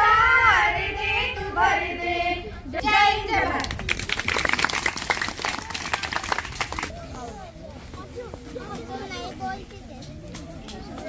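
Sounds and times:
children chattering: 0:06.9 - 0:11.0.

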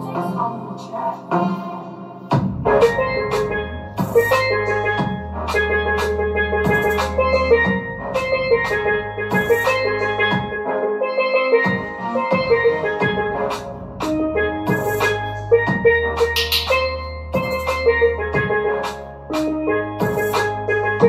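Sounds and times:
backing track with bass and drums: 0:02.3 - 0:10.7, 0:11.5 - 0:21.0
steelpan melody: 0:02.5 - 0:21.0.

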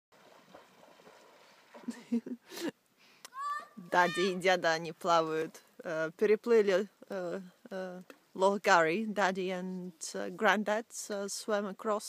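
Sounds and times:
water lapping at shore: 0:00.1 - 0:04.4
person laughing: 0:01.9 - 0:02.8.

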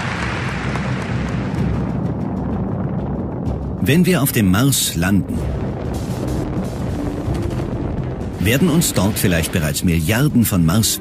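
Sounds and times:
steady rumble: 0:00.0 - 0:11.0.

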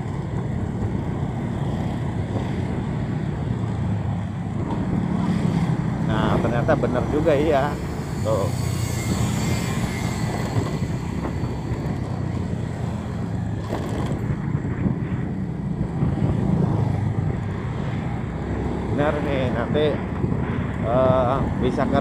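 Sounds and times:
road noise: 0:00.0 - 0:22.0
vehicle engine drone: 0:00.0 - 0:22.0.

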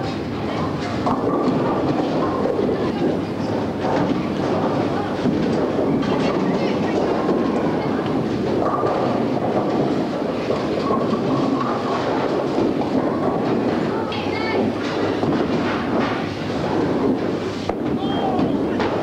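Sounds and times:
bowling balls rolling on lanes: 0:00.0 - 0:19.0
people chattering and calling: 0:00.0 - 0:19.0.

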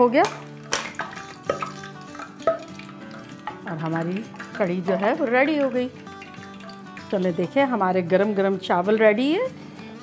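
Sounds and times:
faint background music: 0:00.0 - 0:10.0
utensil knocking on pot: 0:00.2 - 0:07.5.

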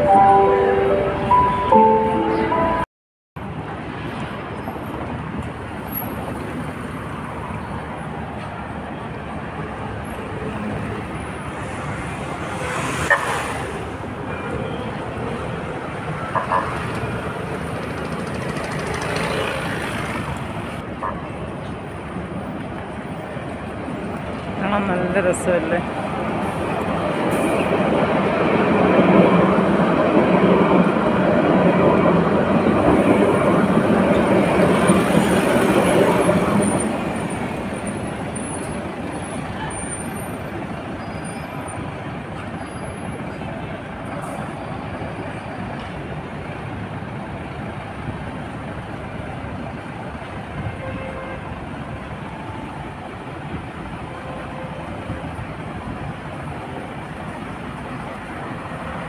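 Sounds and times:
trams passing on track: 0:00.0 - 0:02.8, 0:03.4 - 0:59.0
city traffic: 0:00.0 - 0:59.0.

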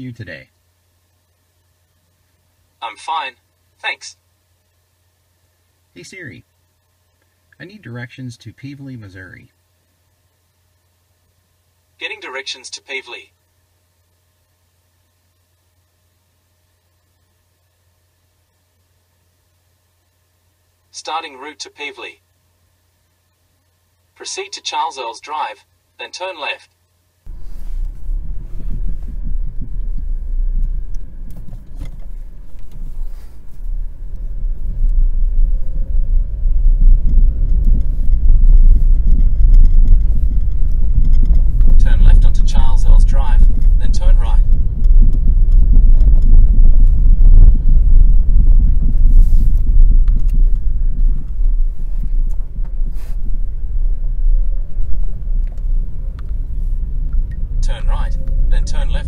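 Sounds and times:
car road and engine rumble: 0:27.3 - 0:59.0.

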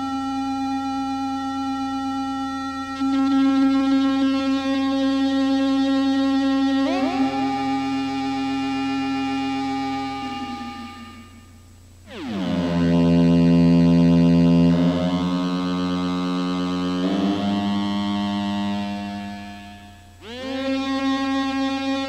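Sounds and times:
held electronic tones chord: 0:00.0 - 0:22.0
low electronic tone: 0:00.0 - 0:22.0
gliding cluster of tones: 0:06.7 - 0:13.2.

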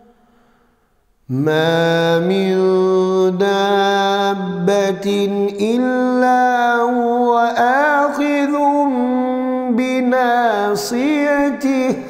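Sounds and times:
man chanting melodic recitation: 0:01.3 - 0:12.0.

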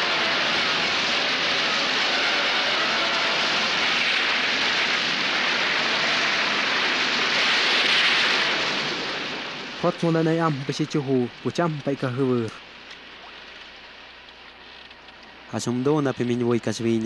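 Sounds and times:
rough sea: 0:00.0 - 0:12.1
wind rushing: 0:00.0 - 0:12.1.

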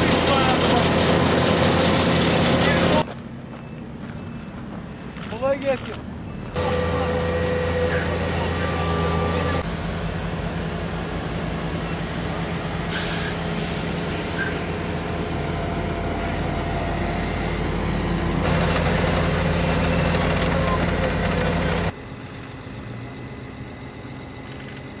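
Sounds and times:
diesel engine running: 0:00.0 - 0:25.0.

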